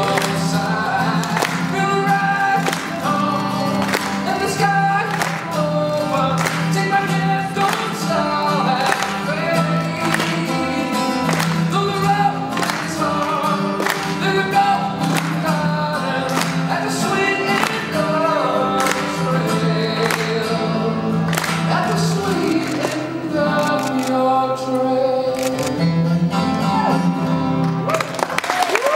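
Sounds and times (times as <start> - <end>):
men singing pop song: 0.0 - 25.7
strummed acoustic guitar: 0.0 - 27.9.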